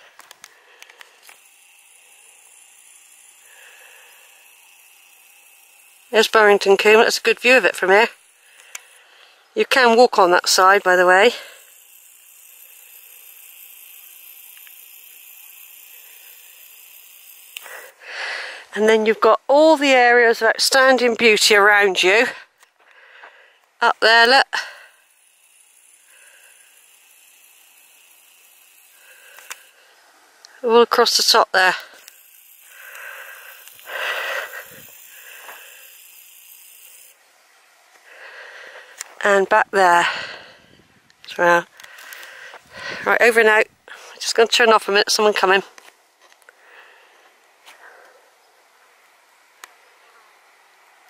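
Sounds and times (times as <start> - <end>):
tiny clicks: 0.0 - 9.3, 11.6 - 17.9, 25.1 - 29.8, 41.1 - 42.4
person breathing close up: 3.4 - 4.5, 8.4 - 9.6, 17.6 - 18.7, 22.4 - 23.7, 28.9 - 30.1, 31.9 - 36.0, 38.0 - 39.2, 40.0 - 40.9, 41.7 - 43.1, 46.5 - 48.4.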